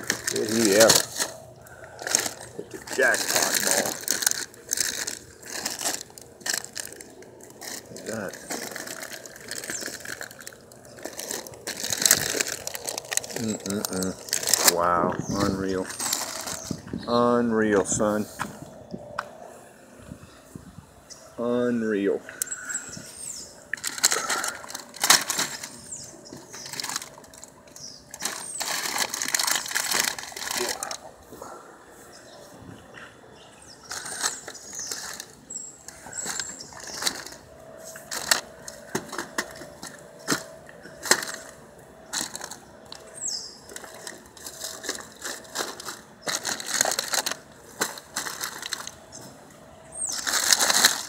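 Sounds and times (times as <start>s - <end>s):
plastic wrappers crinkling: 0.0s - 16.9s, 22.5s - 31.3s, 33.8s - 51.0s.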